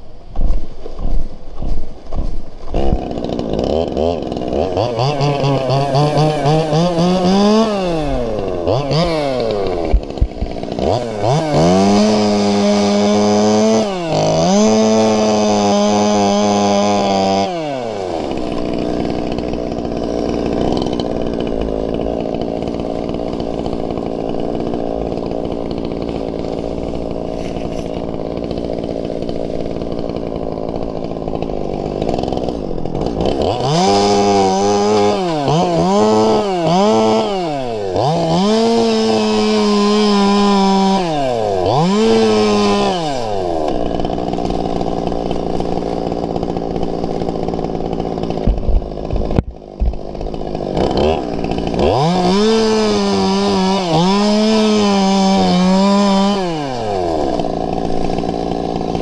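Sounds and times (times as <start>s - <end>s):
chainsaw cutting dead fronds: 0.0s - 59.0s
chainsaw revving: 0.0s - 59.0s.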